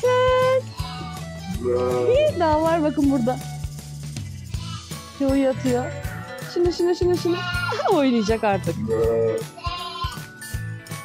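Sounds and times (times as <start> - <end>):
background music with beat: 0.0 - 8.0
sheep bleating: 0.7 - 2.3, 7.2 - 10.3.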